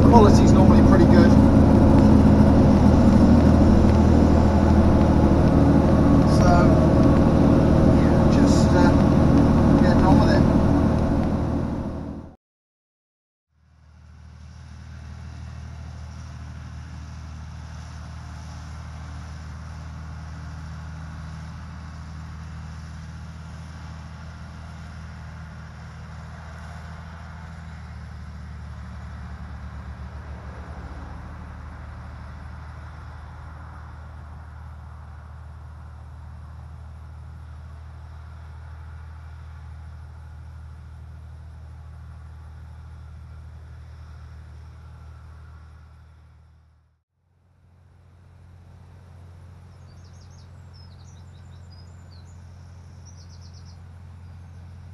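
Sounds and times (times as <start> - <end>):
tractor engine droning: 0.0 - 12.4, 13.9 - 46.6, 47.8 - 54.9.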